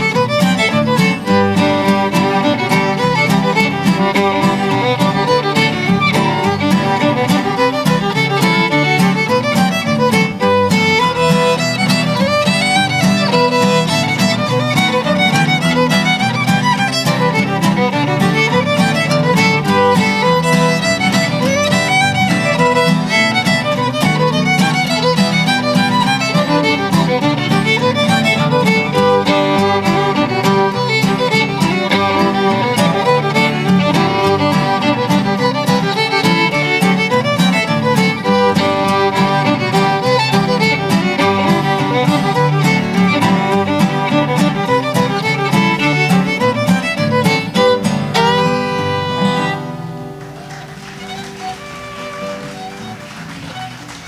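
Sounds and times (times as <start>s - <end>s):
acoustic guitar rhythm: 0.0s - 54.0s
fiddle playing a tune: 0.0s - 54.0s.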